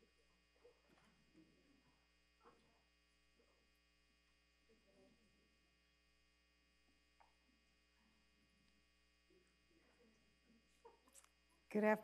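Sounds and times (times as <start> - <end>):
faint electrical hum: 0.0 - 12.0
faint room sounds: 0.0 - 12.0.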